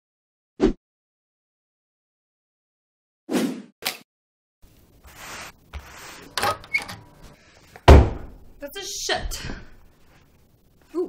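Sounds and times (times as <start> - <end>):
door slamming: 5.8 - 7.2, 7.8 - 8.5.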